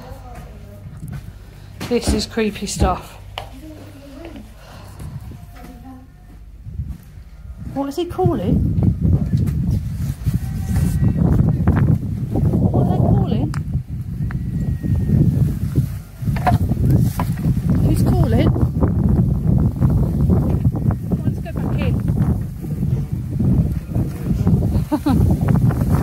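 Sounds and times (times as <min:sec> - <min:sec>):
indistinct voices: 0:00.0 - 0:13.6
wind buffeting microphone: 0:00.0 - 0:26.0.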